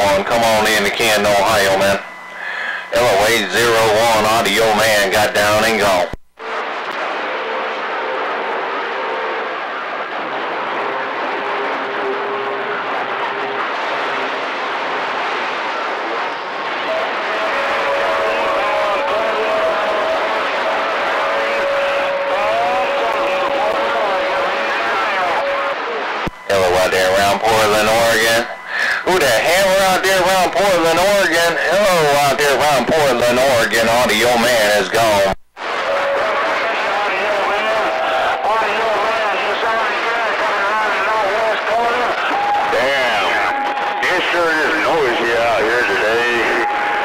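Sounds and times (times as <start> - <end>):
garbled distant voices: 0.0 - 5.9, 15.3 - 47.0
clear radio voice transmission: 0.0 - 6.2, 22.3 - 35.4, 36.3 - 46.8
radio hiss and static: 0.0 - 47.0.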